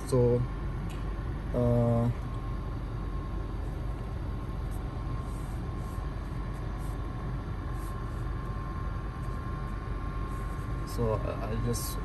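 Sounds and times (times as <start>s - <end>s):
air conditioning whine: 0.0s - 12.0s
car idling low rumble: 0.0s - 12.0s.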